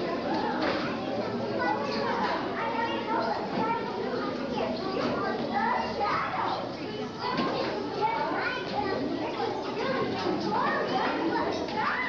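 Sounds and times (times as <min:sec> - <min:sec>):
children talking and calling: 0:00.0 - 0:12.0.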